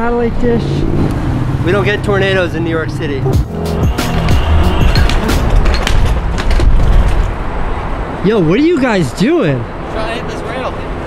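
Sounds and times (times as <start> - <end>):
background music: 2.8 - 6.2
skateboard wheels rumbling on pavement: 4.1 - 7.6
skateboard wheels clicking on joints: 4.3 - 7.3.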